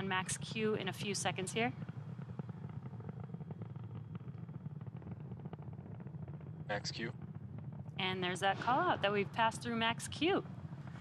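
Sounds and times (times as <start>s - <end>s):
rocket engines rumbling and crackling: 0.0s - 11.0s.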